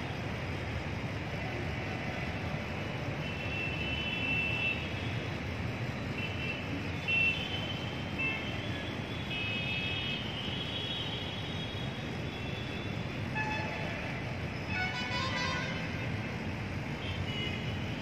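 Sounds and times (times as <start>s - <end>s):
street traffic noise: 0.0s - 18.0s.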